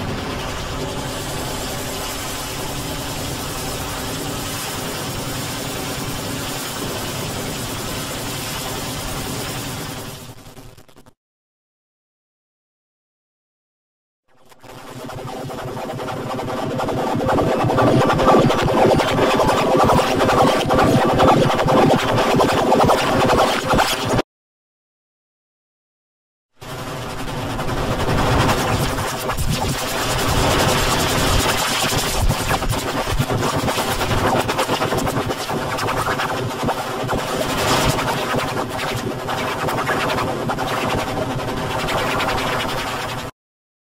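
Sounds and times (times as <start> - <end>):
harsh distorted noise wash: 0.0 - 11.1.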